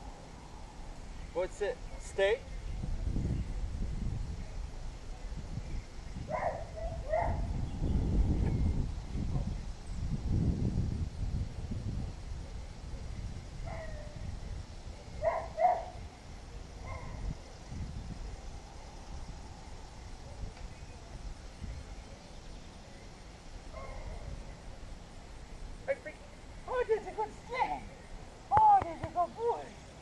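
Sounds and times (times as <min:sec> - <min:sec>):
wind rumble on microphone: 0:00.0 - 0:25.8.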